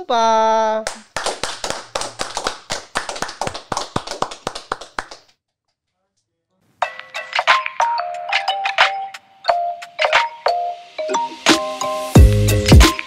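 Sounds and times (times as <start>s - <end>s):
hands clapping: 0.8s - 5.4s, 12.2s - 13.0s
music: 6.8s - 13.0s.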